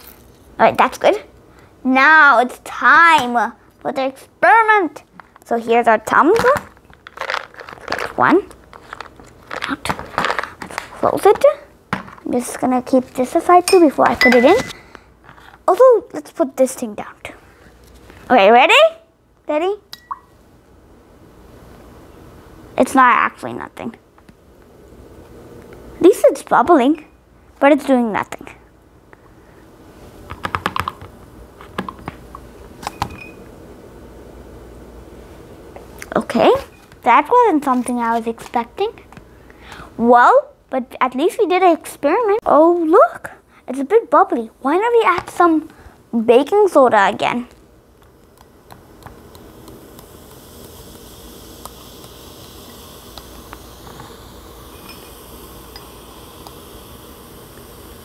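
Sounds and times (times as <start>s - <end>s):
low room hum: 0.0s - 58.0s.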